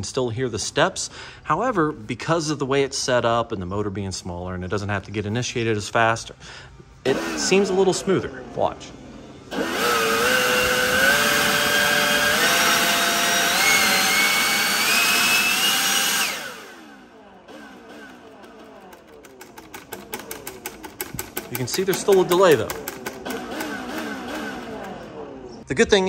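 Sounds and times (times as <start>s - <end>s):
leaf blower motor whine: 7.0s - 25.6s
rapid ticking: 17.7s - 25.1s.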